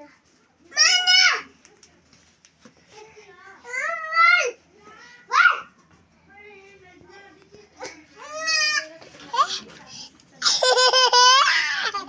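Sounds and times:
child laughing loudly: 0:10.4 - 0:12.0.

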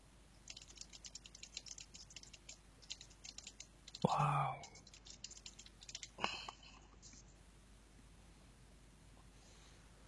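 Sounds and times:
faint rapid keyboard typing: 0:00.4 - 0:07.4.

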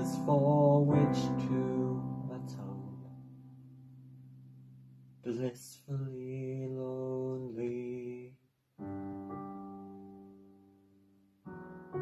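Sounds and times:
man singing long note: 0:00.0 - 0:03.1, 0:05.3 - 0:08.4.

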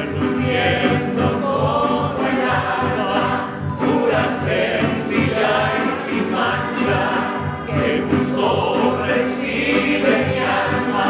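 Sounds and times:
men and women singing together: 0:00.0 - 0:11.0
strummed guitars: 0:00.0 - 0:11.0
violins: 0:00.0 - 0:11.0.

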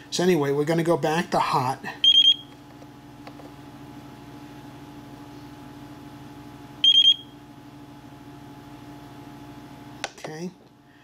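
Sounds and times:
steady low hum: 0:00.0 - 0:11.0
short high beeps: 0:06.8 - 0:07.3.

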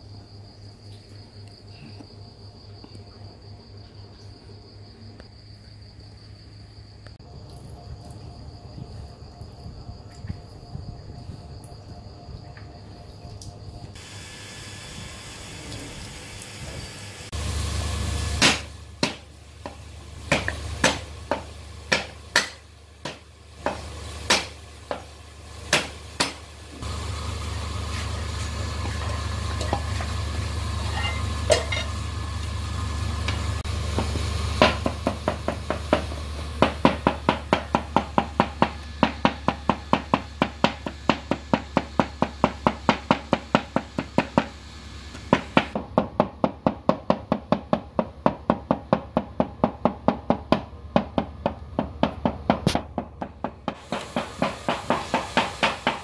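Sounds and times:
low steady hum: 0:00.0 - 0:35.3
cleaver chopping on wooden board: 0:18.4 - 0:25.1, 0:25.7 - 0:26.4.

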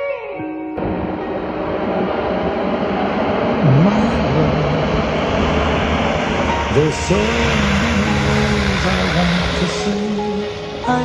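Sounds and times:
turboprop aircraft droning: 0:00.8 - 0:11.0.

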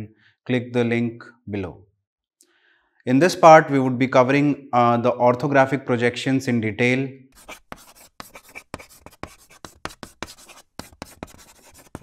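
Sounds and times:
chalk scratching on blackboard: 0:07.4 - 0:12.0.

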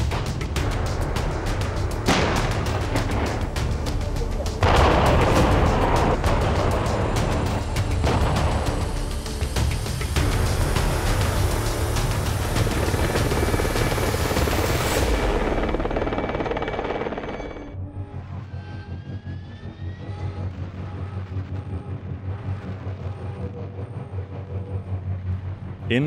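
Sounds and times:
low rhythmic pulsing: 0:00.1 - 0:18.4, 0:19.6 - 0:26.0.

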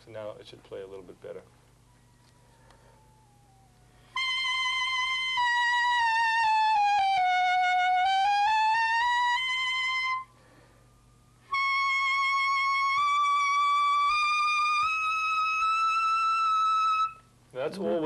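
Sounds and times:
clarinet high notes: 0:03.0 - 0:10.4, 0:11.4 - 0:18.0.

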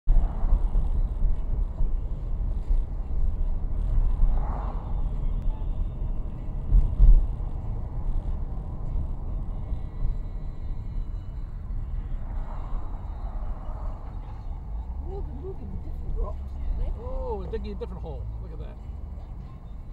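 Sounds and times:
car engine rumble: 0:00.1 - 0:19.9
tyres on road: 0:00.1 - 0:19.9.

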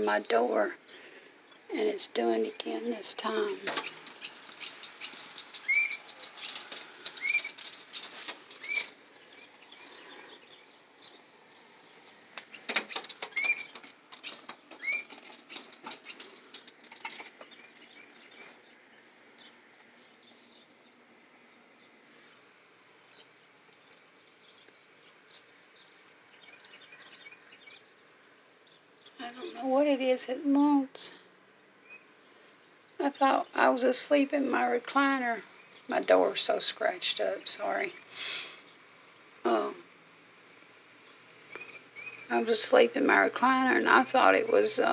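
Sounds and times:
high squeaky bird notes: 0:03.4 - 0:08.9, 0:12.4 - 0:17.1
taps and scratches on glass: 0:03.6 - 0:08.9, 0:12.4 - 0:17.5
bird wings flapping: 0:03.6 - 0:09.0, 0:12.4 - 0:17.4.

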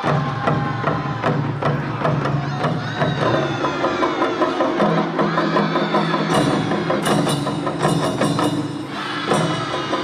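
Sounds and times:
drums: 0:00.0 - 0:10.0
fast clacking percussion: 0:00.0 - 0:10.0.

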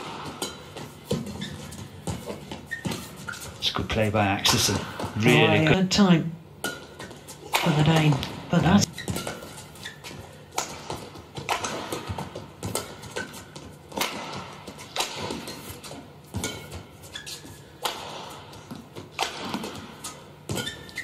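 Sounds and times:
rackets striking shuttlecock: 0:10.3 - 0:17.0, 0:17.7 - 0:21.0.

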